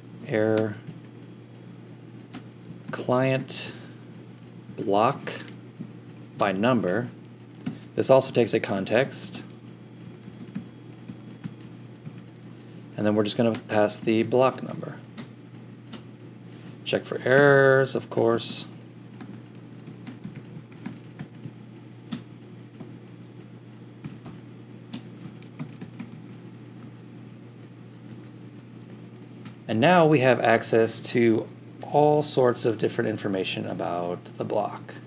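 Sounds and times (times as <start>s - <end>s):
keyboard typing: 10.0s - 12.4s, 19.2s - 23.0s, 24.0s - 27.0s, 27.9s - 29.6s.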